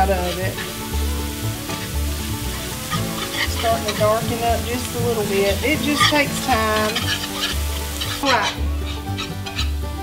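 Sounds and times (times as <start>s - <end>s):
roux sizzling in a skillet: 0.0s - 10.0s
soft background music: 0.0s - 10.0s.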